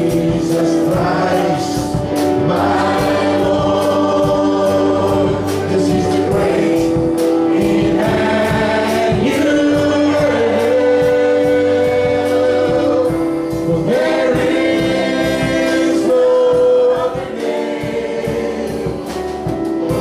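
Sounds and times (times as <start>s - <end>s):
congregation singing: 0.0s - 20.0s
guitar: 0.0s - 20.0s
steady beat: 0.0s - 20.0s.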